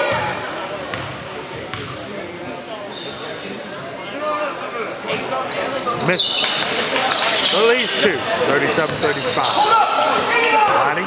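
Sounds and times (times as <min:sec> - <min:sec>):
crowd chatter: 0:00.0 - 0:11.0
sneaker squeaks: 0:01.7 - 0:03.4, 0:05.1 - 0:08.0, 0:08.8 - 0:10.2.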